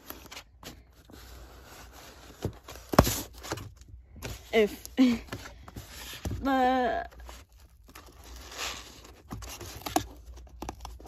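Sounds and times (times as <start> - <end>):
scissors cutting cardboard: 7.1 - 11.0.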